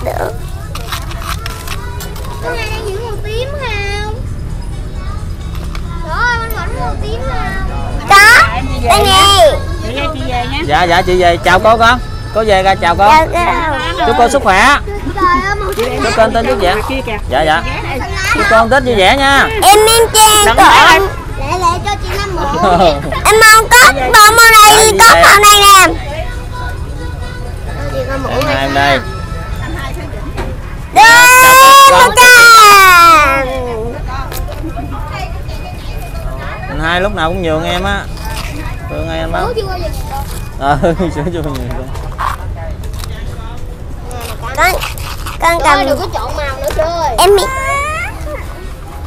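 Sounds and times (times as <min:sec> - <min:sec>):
child's sing-song voice: 0:00.0 - 0:10.2, 0:19.6 - 0:30.1
faint voices talking: 0:00.0 - 0:49.0.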